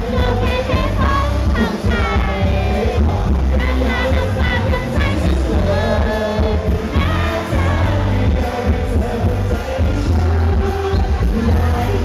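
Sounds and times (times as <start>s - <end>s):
loud amplified music with bass: 0.0s - 12.0s
man singing into microphone: 0.0s - 12.0s.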